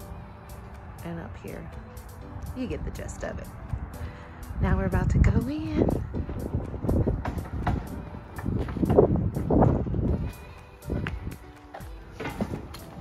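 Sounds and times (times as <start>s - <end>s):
low rumble: 0.0s - 11.3s
background music: 0.0s - 13.0s.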